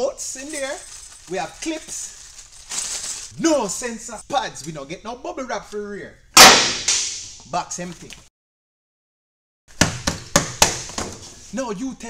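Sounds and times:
papery rustling: 0.4 - 3.4.

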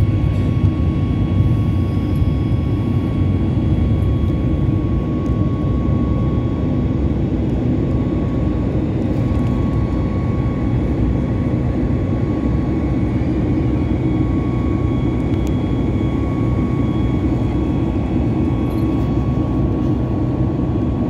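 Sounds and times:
jet cabin engine rush: 0.0 - 21.0
faint thin whine: 12.2 - 20.6.

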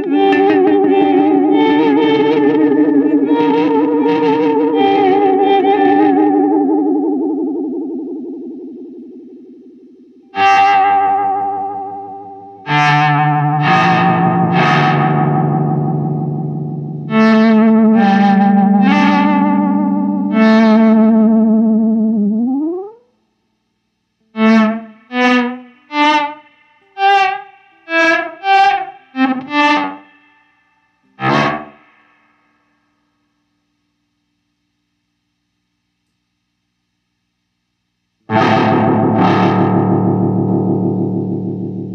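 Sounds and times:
distorted electric guitar chords: 0.0 - 30.4, 31.0 - 32.2, 38.2 - 41.9
short choppy guitar notes: 10.2 - 20.2, 31.2 - 31.9, 38.3 - 41.9.

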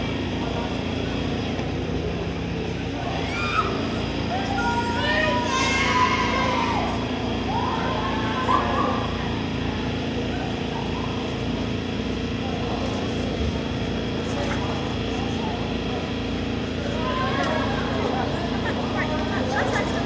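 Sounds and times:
low mechanical hum: 0.0 - 20.0
scattered voices: 0.0 - 20.0.

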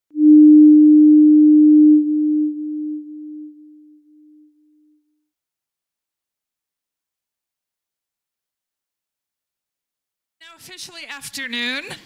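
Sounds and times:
steady electronic tone: 0.1 - 5.0.

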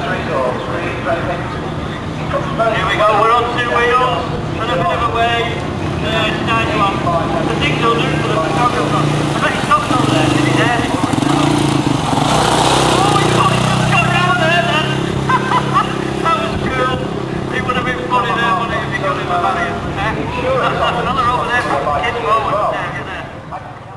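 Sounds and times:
quad bike engine running: 0.0 - 23.9
voices talking: 0.0 - 23.9.

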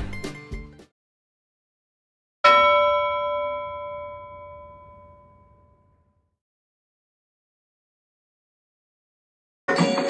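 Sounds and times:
bell-like chime ringing: 2.4 - 6.2.

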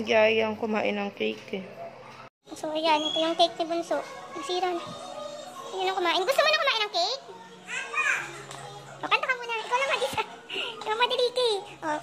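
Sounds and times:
small child's voice: 2.5 - 12.0.

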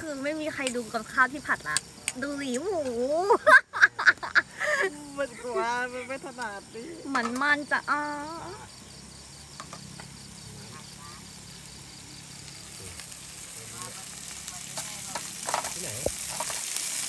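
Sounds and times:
vegetables sizzling in a frying pan: 0.0 - 17.0
utensils tapping a pan: 14.6 - 17.0.

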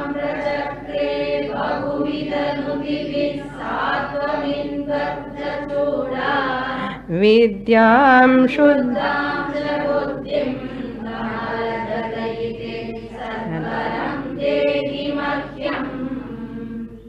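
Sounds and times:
group chanting in unison: 0.0 - 7.1, 8.8 - 17.0.

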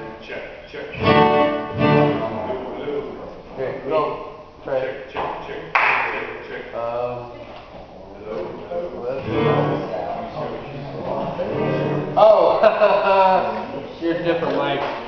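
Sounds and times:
acoustic guitar strums and notes: 0.9 - 2.7, 9.2 - 10.1, 11.1 - 12.2
quiet talking: 6.2 - 15.0.

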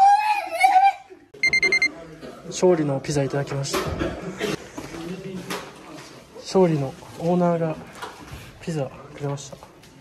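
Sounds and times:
short electronic beeps: 1.4 - 1.9.

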